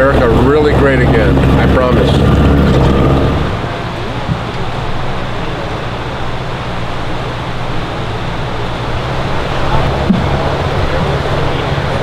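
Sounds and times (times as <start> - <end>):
outboard motor hum: 0.0 - 12.0
river water rushing: 0.0 - 12.0.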